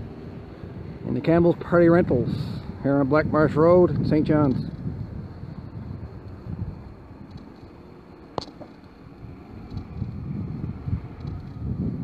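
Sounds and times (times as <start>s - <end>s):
low street rumble: 0.0s - 12.0s
wind buffeting microphone: 0.0s - 12.0s
sharp click: 8.4s - 8.8s.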